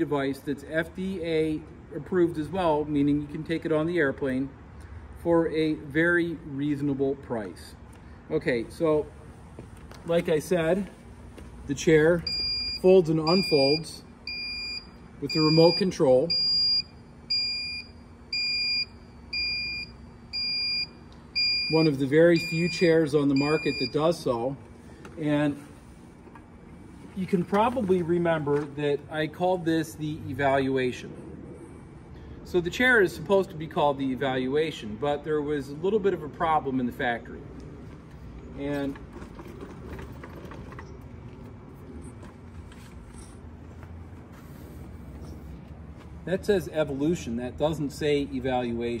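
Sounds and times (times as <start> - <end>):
footsteps on asphalt: 9.4 - 11.7, 37.8 - 46.3
high even warning beeps: 12.2 - 24.4
steady low rumble: 23.0 - 40.2
wheelchair frame clicking and rattling: 38.8 - 41.4.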